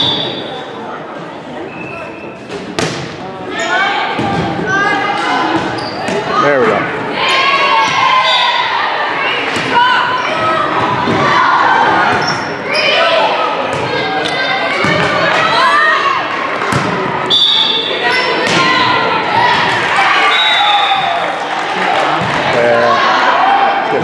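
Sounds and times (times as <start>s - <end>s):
people shouting and cheering: 3.4s - 24.0s.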